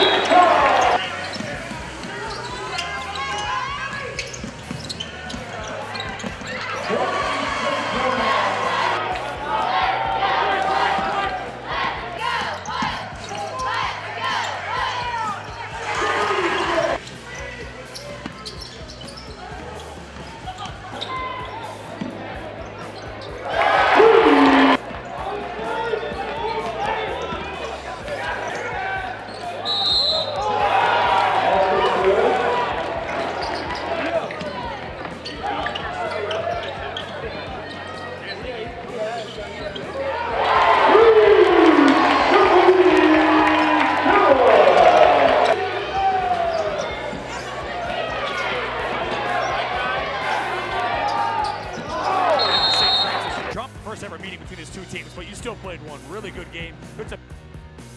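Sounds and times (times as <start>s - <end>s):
crowd cheering: 0.0s - 17.0s, 19.5s - 38.2s, 39.7s - 54.1s
murmur of crowd voices: 0.0s - 57.9s.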